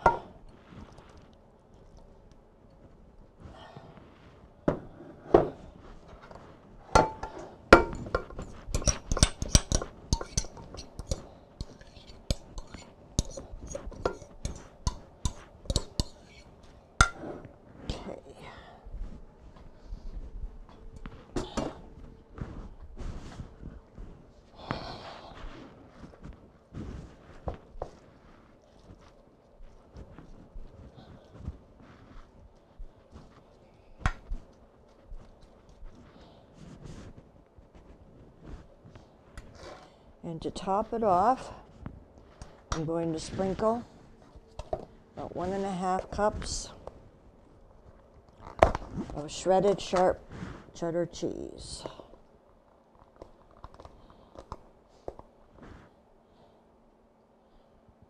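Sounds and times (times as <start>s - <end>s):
metal spoon clinking on bowl: 8.8s - 16.3s.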